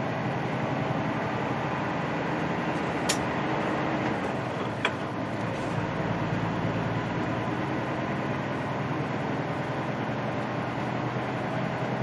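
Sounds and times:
diesel truck engine running: 0.0 - 12.0
road noise: 0.0 - 12.0.

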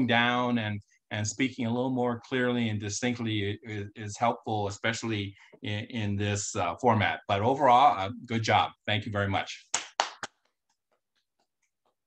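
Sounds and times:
faint hand claps: 9.7 - 10.6.

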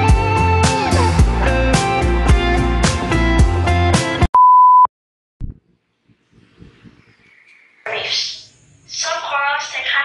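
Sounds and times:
background music with guitar: 0.0 - 4.3.

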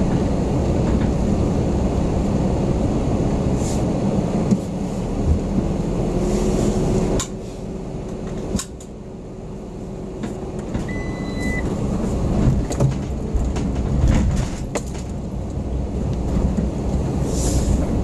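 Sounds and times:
car engine rumble from inside: 0.0 - 18.0
short high beep: 10.9 - 11.6.

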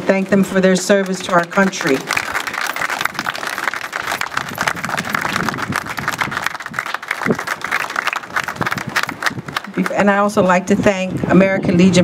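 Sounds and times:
crowd applauding: 1.0 - 10.1.

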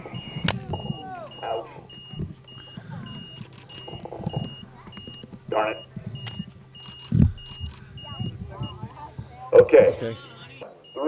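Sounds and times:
short high electronic beeps: 0.0 - 5.2
faint voices: 0.0 - 11.0.

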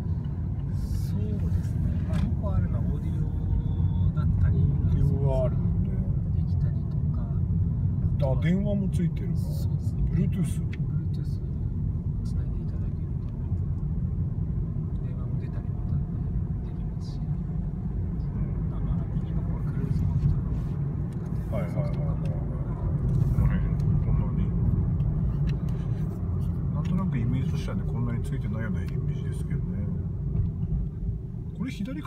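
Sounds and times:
car engine and road noise: 0.0 - 32.0.

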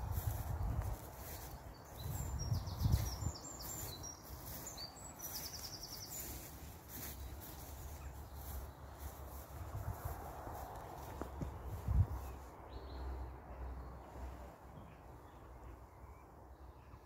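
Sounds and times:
small songbirds singing: 0.0 - 17.0.

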